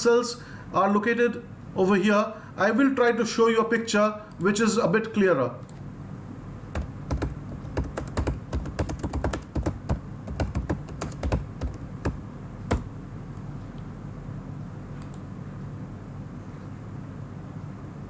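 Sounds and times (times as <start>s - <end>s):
low steady hum: 0.0s - 18.0s
keyboard typing: 6.7s - 12.9s.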